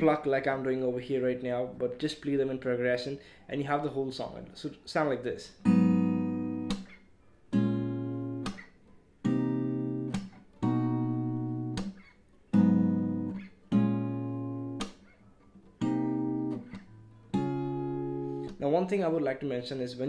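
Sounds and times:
fingerpicked acoustic guitar chords: 0:05.6 - 0:18.6.

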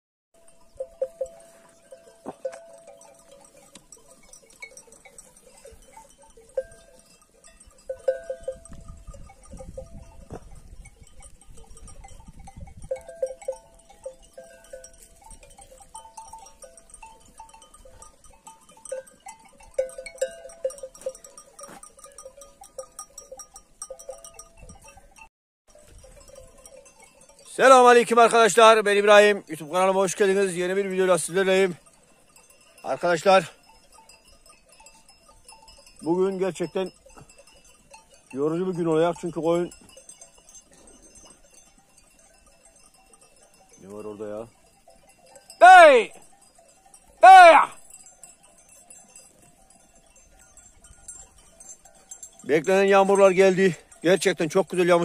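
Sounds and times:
sheep bells clinking: 0:00.4 - 0:55.0.

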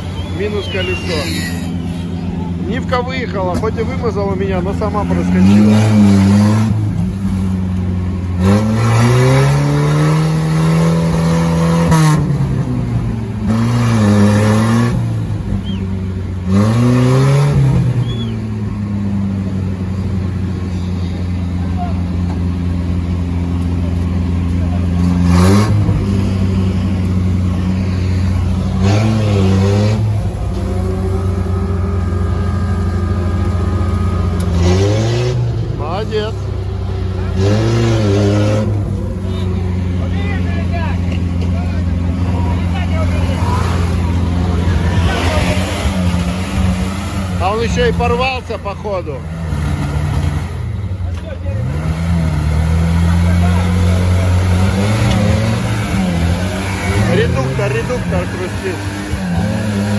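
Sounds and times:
engine revving hard: 0:04.6 - 0:07.2, 0:08.4 - 0:12.8, 0:13.4 - 0:15.2, 0:16.4 - 0:18.2, 0:24.8 - 0:50.8, 0:51.5 - 0:59.9.

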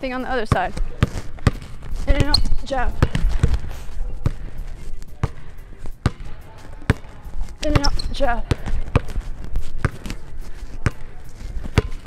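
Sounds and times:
basketball bouncing on hardwood: 0:00.5 - 0:03.6, 0:06.9 - 0:09.2, 0:11.7 - 0:12.0.

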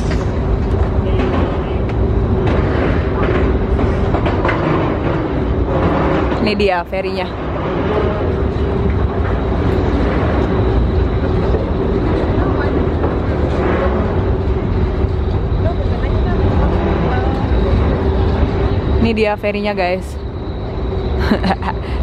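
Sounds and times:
ferry engines droning: 0:00.0 - 0:22.0.

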